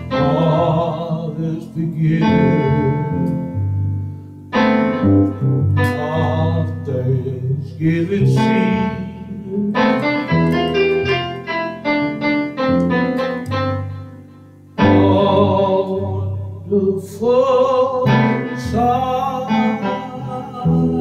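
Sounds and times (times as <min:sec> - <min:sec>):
electronic keyboard chords: 0:00.0 - 0:17.0, 0:17.8 - 0:21.0
sustained low bass note: 0:04.9 - 0:11.7.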